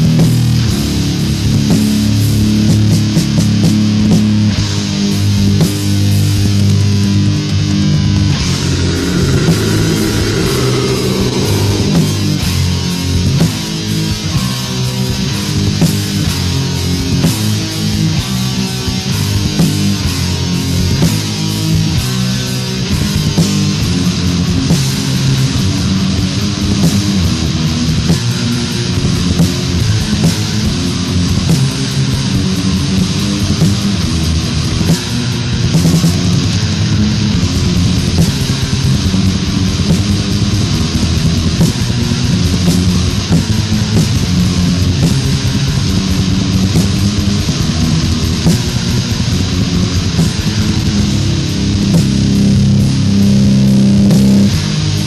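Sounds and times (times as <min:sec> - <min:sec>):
distorted metal guitars and bass: 0:00.0 - 0:55.0
drums: 0:00.0 - 0:55.0
distorted metal band playing: 0:06.4 - 0:14.1
sharp cymbal hits: 0:08.2 - 0:13.2.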